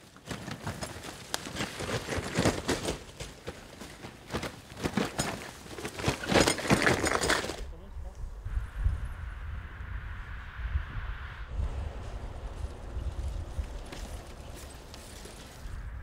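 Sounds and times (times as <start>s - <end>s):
leaves crunching under bicycle: 0.0s - 7.7s, 11.7s - 16.0s
low rumble: 7.7s - 16.0s.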